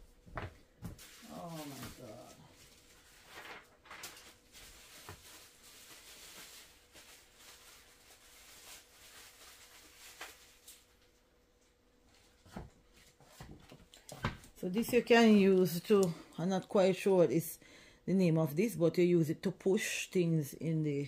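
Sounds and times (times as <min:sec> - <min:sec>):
packaging rustling and knocking: 0:03.2 - 0:07.8.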